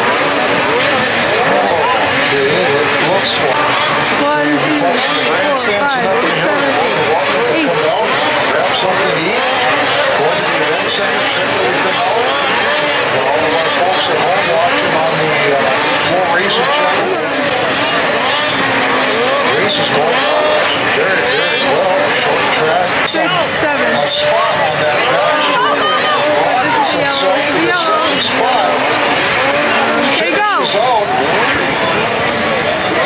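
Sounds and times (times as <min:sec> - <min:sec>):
snowmobile engines revving: 0:00.0 - 0:33.0.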